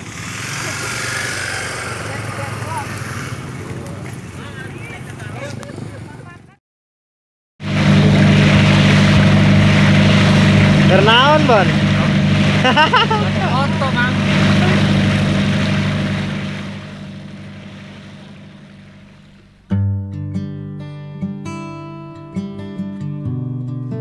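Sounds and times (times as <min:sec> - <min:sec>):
water rushing past hull: 0:00.0 - 0:06.2, 0:07.6 - 0:19.7
boat engine droning: 0:00.0 - 0:06.6, 0:07.6 - 0:19.7
people's voices: 0:00.0 - 0:06.6, 0:10.8 - 0:15.0.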